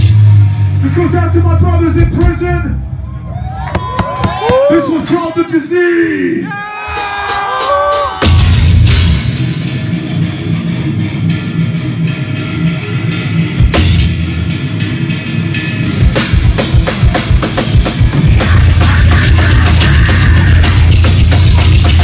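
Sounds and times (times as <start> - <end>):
pounding drum kit: 0.0 - 2.8, 6.8 - 22.0
distorted guitars and bass: 0.0 - 3.6, 8.2 - 22.0.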